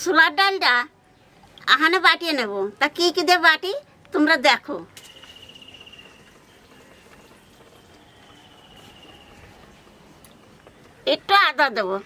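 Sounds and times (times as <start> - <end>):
thin high trill: 5.0 - 6.4.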